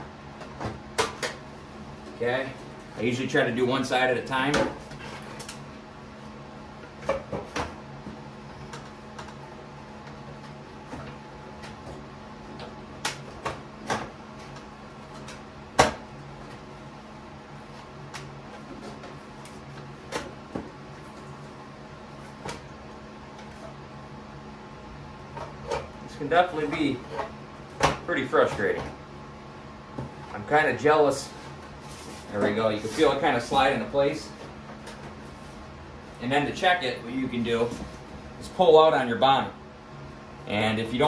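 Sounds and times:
low steady hum: 0.0 - 41.0.

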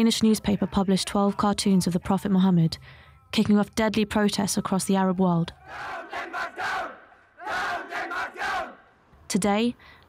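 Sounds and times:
crowd of men shouting slogans: 5.6 - 9.0.

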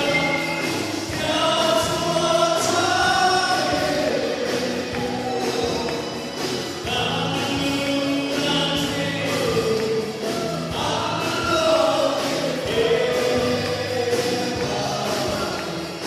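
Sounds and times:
live band playing: 0.0 - 16.0
voices singing into microphones: 0.0 - 16.0.

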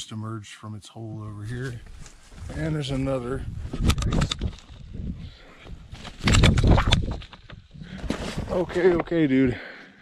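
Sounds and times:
camera handling noise: 3.7 - 4.8.

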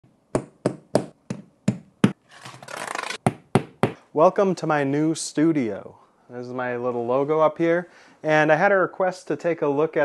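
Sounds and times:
hammer striking wall: 0.4 - 2.2, 3.2 - 4.0
rough scraping: 2.2 - 3.2.

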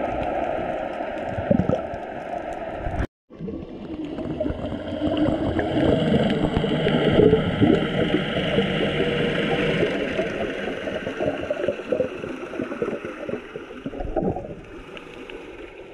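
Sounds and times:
underwater rumbling water: 0.0 - 15.9.

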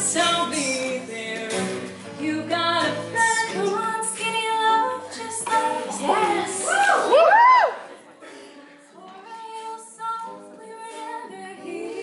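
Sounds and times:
woman singing: 0.0 - 7.1, 8.9 - 12.0
voices singing in harmony: 3.2 - 7.1, 9.0 - 12.0.

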